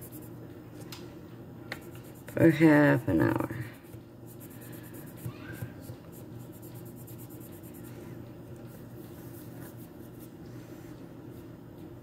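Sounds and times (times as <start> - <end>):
pencil scratching on paper: 0.0 - 0.3, 3.9 - 8.0
low background hum: 0.0 - 12.0.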